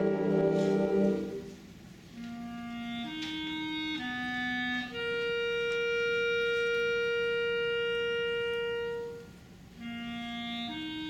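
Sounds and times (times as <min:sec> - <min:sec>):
wind band holding long note: 0:00.0 - 0:11.0.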